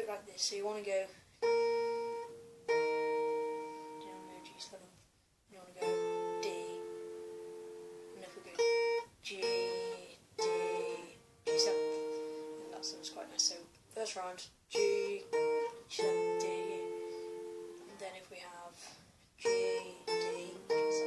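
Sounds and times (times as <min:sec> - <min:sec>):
acoustic guitar finger-picked: 0:00.0 - 0:04.8, 0:05.8 - 0:21.0.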